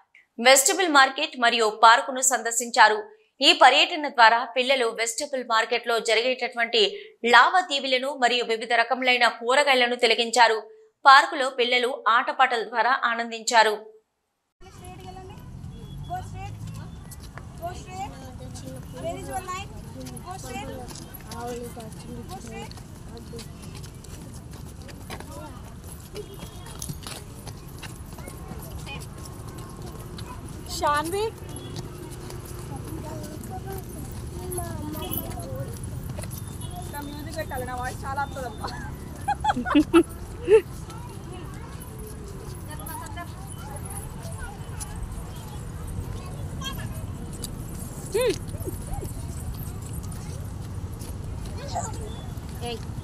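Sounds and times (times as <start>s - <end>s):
small children chattering: 14.6s - 53.0s.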